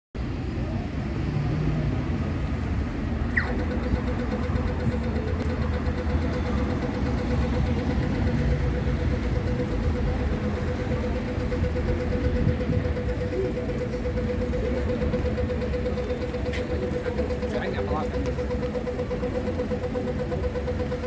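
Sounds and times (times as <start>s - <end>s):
rumble of bus and car engines: 0.2s - 21.0s
steady high hum: 2.4s - 21.0s.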